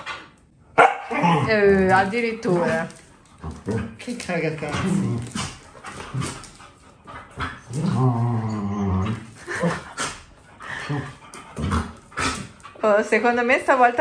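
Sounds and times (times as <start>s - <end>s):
dogs growling and grumbling: 1.0s - 12.9s
long low grumbling dog call: 7.6s - 9.8s.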